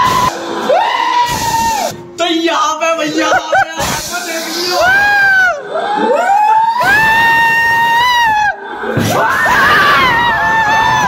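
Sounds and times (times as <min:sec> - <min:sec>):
high-pitched frightened screams: 0:00.0 - 0:02.0, 0:04.2 - 0:11.0.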